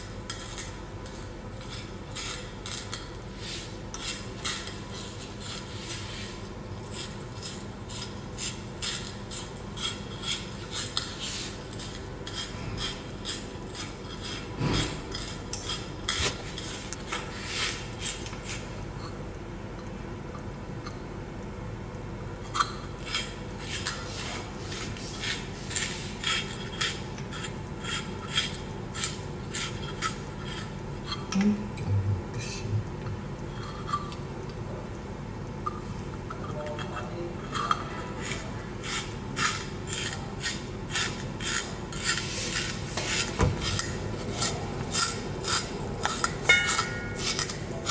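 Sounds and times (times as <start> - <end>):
carrot scraping on slicer blade: 0.3 - 18.6, 23.0 - 30.8, 37.4 - 47.9
spiral slicer cutting carrot: 38.2 - 47.9.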